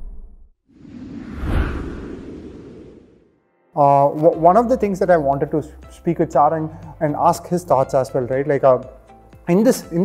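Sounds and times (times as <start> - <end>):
whoosh sound effect: 0.8 - 3.4.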